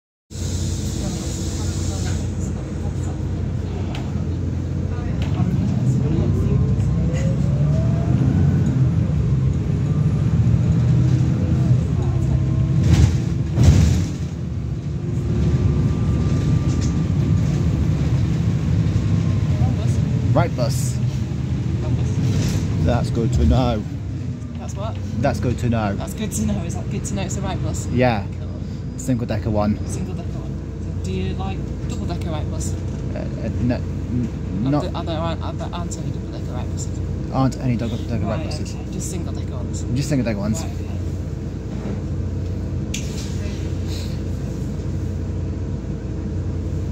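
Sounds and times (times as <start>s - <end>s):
bus engine rumble: 0.3s - 46.9s
rising engine whine: 2.0s - 46.9s.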